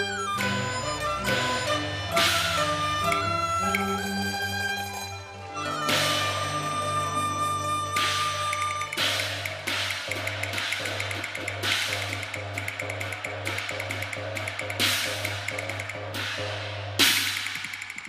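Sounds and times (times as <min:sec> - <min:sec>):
rapid ticking percussion beats: 0:00.0 - 0:05.0, 0:07.8 - 0:18.0.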